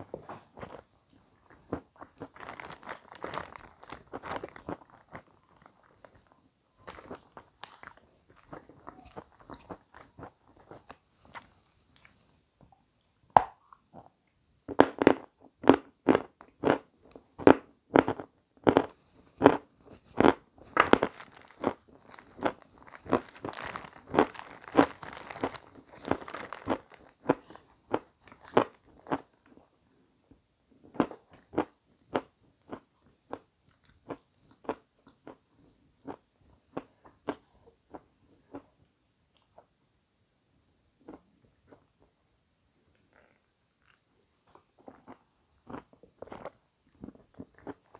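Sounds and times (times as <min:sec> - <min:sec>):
person chewing crunchy cake: 0:00.0 - 0:12.4, 0:13.6 - 0:29.8, 0:30.8 - 0:39.7, 0:42.9 - 0:47.9.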